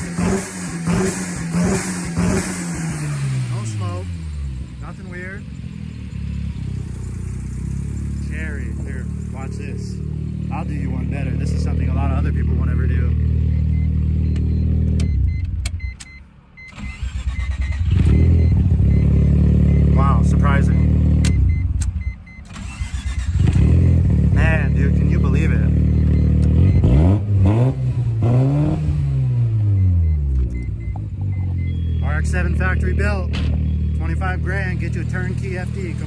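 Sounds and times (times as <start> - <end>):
engine revving: 0.0 - 15.2, 16.7 - 21.8, 22.5 - 36.0.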